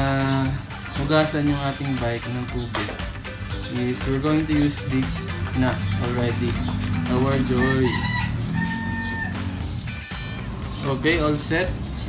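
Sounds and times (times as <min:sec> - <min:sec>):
background music: 0:00.0 - 0:12.0
rooster crowing: 0:07.3 - 0:09.8.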